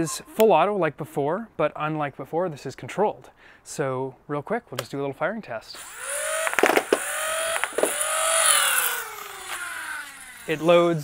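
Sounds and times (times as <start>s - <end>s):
toy blaster balls firing: 5.8s - 10.7s
blaster flywheel motors whining: 5.8s - 11.0s.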